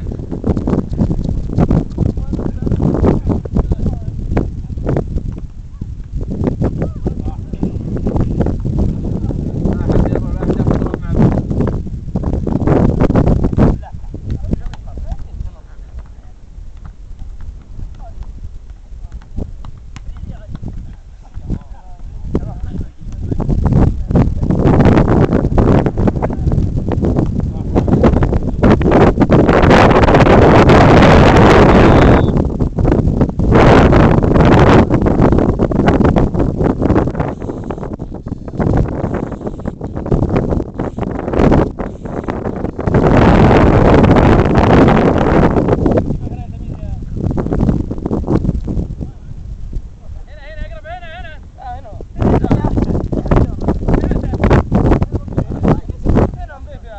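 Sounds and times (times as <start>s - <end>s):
wind rumble on microphone: 0.0s - 56.9s
ball being kicked: 15.9s - 21.7s.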